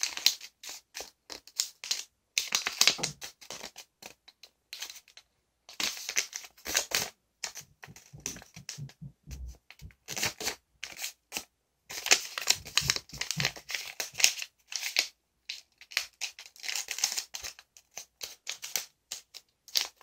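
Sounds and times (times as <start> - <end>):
paper crinkling and rustling: 0.0 - 20.0.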